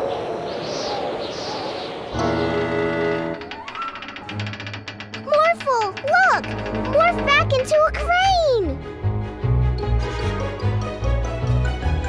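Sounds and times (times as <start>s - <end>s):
background music: 2.2s - 12.0s.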